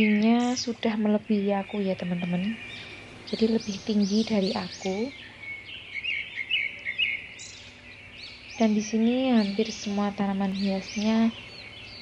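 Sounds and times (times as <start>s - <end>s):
outdoor background hiss: 0.0s - 12.0s
small birds chirping: 0.0s - 12.0s.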